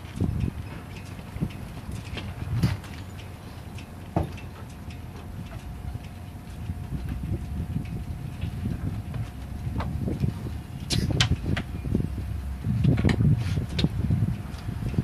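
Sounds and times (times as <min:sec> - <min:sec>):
boat hardware clicks and knocks: 0:00.0 - 0:11.9, 0:12.8 - 0:15.0
wind rumble on microphone: 0:00.0 - 0:15.0.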